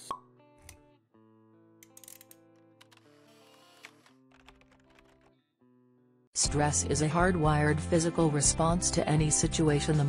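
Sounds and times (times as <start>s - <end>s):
soft background music: 6.4s - 10.0s.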